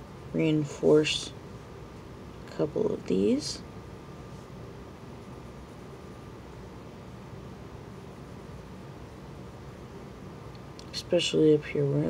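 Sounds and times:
low hiss and hum: 0.0s - 12.0s.

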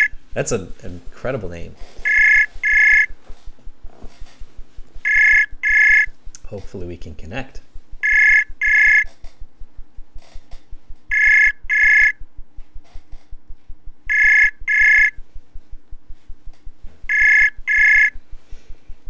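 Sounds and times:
call ringback tone: 2.0s - 3.1s, 5.0s - 6.1s, 8.0s - 9.2s, 11.1s - 12.2s, 14.1s - 15.2s, 17.1s - 18.2s.

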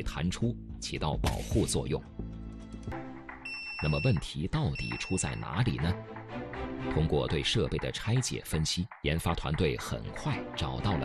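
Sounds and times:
high electronic beeps: 3.5s - 5.6s.

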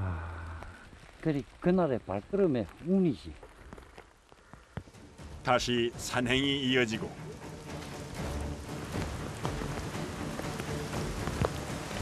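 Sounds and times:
rain falling on foliage: 0.0s - 12.0s
soft background music: 4.9s - 12.0s.

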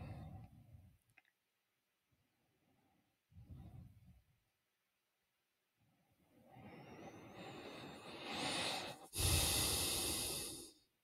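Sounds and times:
man breathing deeply: 6.3s - 10.9s.

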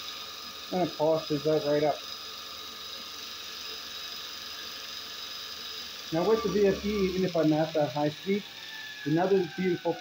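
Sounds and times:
bench grinder motor whining: 6.1s - 10.0s.

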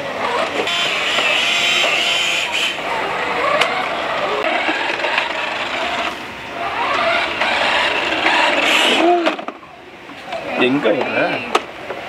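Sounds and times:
toy car motor whirring: 0.2s - 9.6s.

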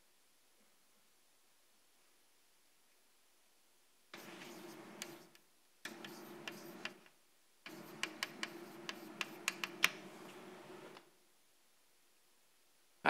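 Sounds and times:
chalk tapping and scratching on blackboard: 4.2s - 10.9s.

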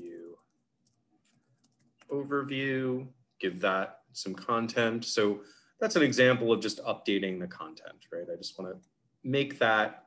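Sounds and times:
soft keyboard typing clicks: 0.4s - 2.1s.

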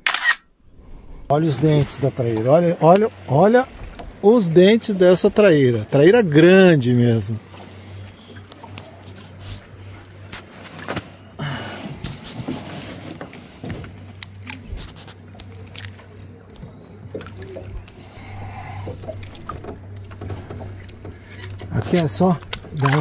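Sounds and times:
steady low hum: 0.4s - 23.0s
water splashing against boat hull: 1.4s - 23.0s.

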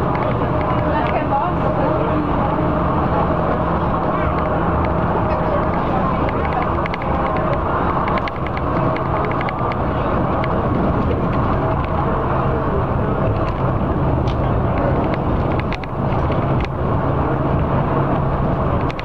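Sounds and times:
bus engine drone: 0.0s - 19.0s
road noise: 0.0s - 19.0s.

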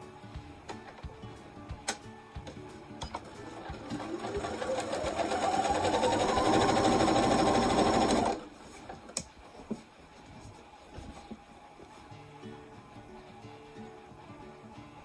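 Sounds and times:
sewing machine stitching: 3.1s - 8.5s.

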